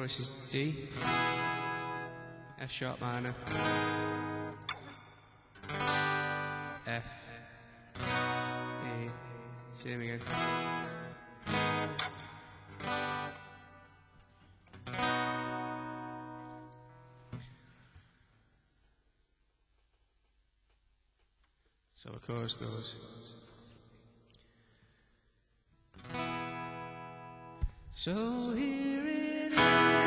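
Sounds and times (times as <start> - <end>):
acoustic guitar strummed chords: 0.0 - 18.0, 25.9 - 30.0.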